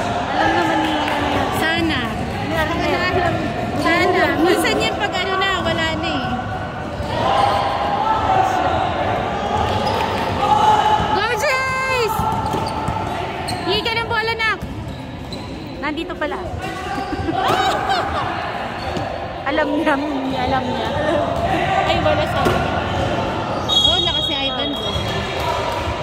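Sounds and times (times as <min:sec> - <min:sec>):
echoing indistinct voices: 0:00.0 - 0:14.6, 0:15.7 - 0:26.0
sneakers squeaking on gym floor: 0:11.6 - 0:16.4, 0:18.7 - 0:19.2, 0:22.4 - 0:25.3.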